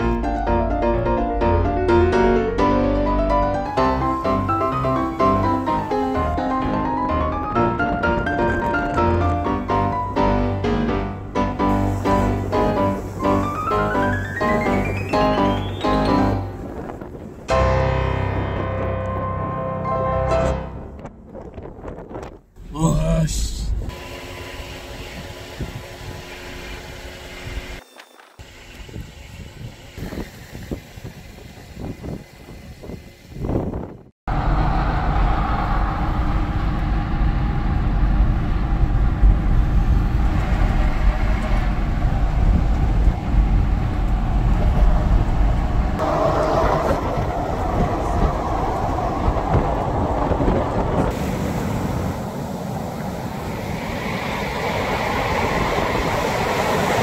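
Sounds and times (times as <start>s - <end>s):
road and wind noise in car: 3.8s - 10.3s, 11.6s - 19.9s, 20.7s - 27.8s, 28.4s - 57.0s.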